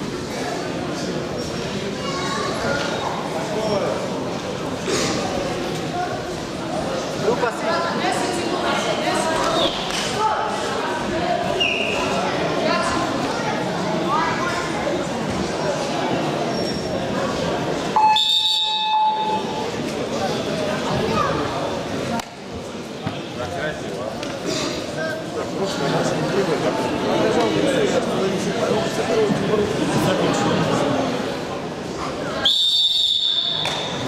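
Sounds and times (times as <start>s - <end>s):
crowd chatter: 0.0s - 34.0s
referee's whistle blast: 18.0s - 19.5s, 32.5s - 34.0s.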